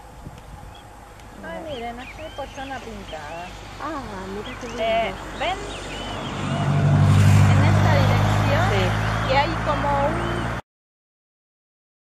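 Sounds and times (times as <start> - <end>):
motor engine droning: 3.0 - 10.6.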